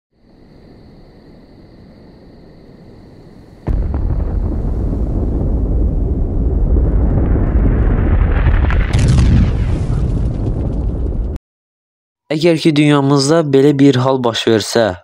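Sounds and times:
explosion blast: 0:03.6 - 0:11.4.

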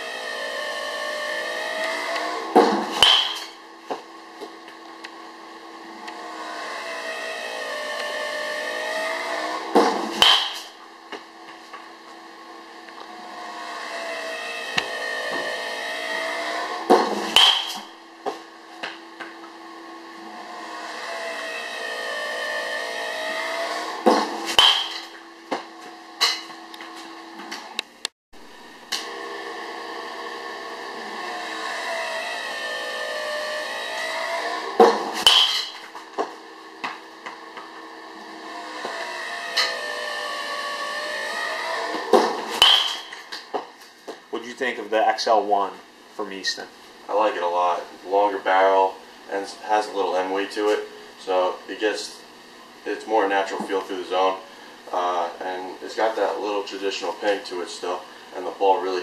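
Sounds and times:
pitching machine whir: 0:00.0 - 0:28.0, 0:28.7 - 0:44.5
baseball bat hitting balls: 0:02.2 - 0:04.6, 0:09.7 - 0:11.8, 0:16.6 - 0:19.5, 0:23.2 - 0:26.6, 0:34.7 - 0:37.8, 0:41.9 - 0:44.2.

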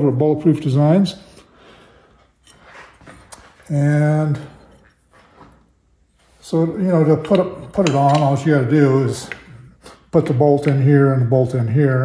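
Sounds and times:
faint handling sounds: 0:01.2 - 0:10.2.

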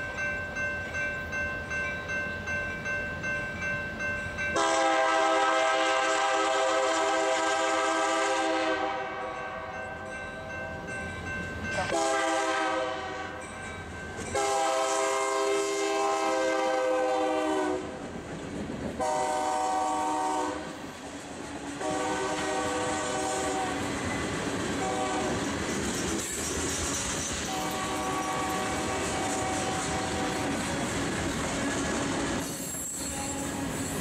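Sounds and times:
locomotive air horn blasts: 0:04.6 - 0:09.7, 0:11.8 - 0:13.4, 0:14.3 - 0:18.0, 0:19.0 - 0:20.8, 0:21.8 - 0:23.9, 0:24.8 - 0:25.4, 0:27.5 - 0:30.5, 0:33.1 - 0:33.7.

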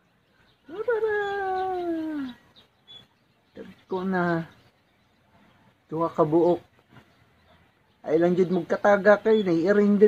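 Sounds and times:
faint high chirp: 0:00.0 - 0:05.8
person calling coaxingly: 0:00.6 - 0:02.6.

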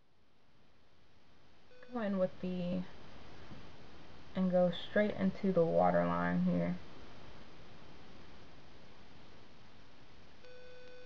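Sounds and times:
faint hiss: 0:00.0 - 0:11.0.

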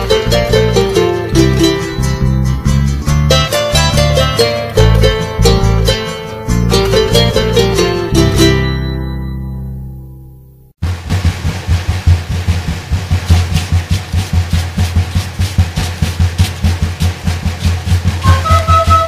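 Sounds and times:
steady bass drum beat: 0:00.0 - 0:08.6, 0:10.8 - 0:19.0
fast strumming of plucked strings: 0:00.0 - 0:09.2, 0:10.8 - 0:19.0
folk music chord ringing: 0:00.0 - 0:10.7.

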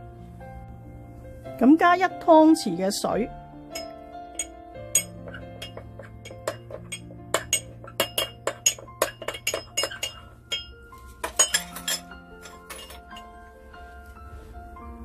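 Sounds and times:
soft background music: 0:00.0 - 0:15.0
metal spoon clinking against ceramic jug: 0:03.7 - 0:13.3.

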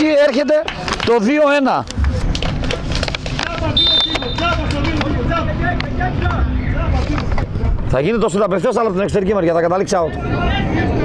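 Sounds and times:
players shouting and calling: 0:03.4 - 0:07.0
high whistle: 0:03.8 - 0:04.6.

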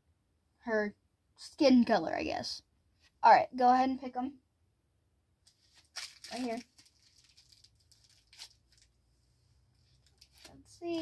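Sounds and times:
plastic wrappers crinkling: 0:05.5 - 0:09.1, 0:09.8 - 0:11.0.

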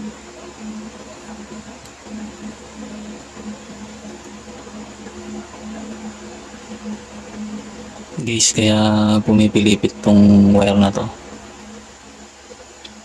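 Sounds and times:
faint electric hum: 0:00.0 - 0:13.0.

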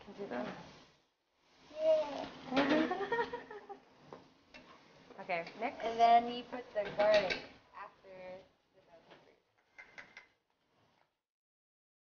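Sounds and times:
women laughing: 0:02.6 - 0:03.8.

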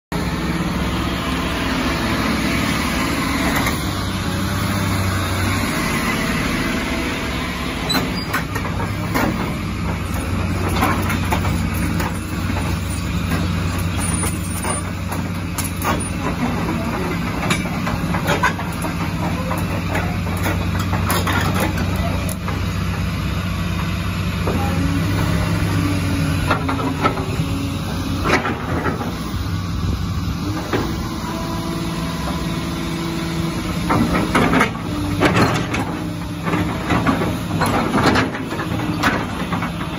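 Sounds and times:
excavator diesel engine running: 0:00.1 - 0:39.9
short metallic clanks and knocks: 0:07.9 - 0:22.6, 0:28.2 - 0:29.2, 0:33.8 - 0:39.9.

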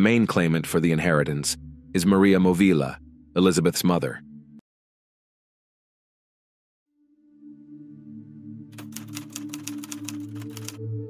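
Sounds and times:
low ambient music drone: 0:00.0 - 0:04.6, 0:07.0 - 0:11.0
rapid typewriter key clacks: 0:08.8 - 0:10.8.

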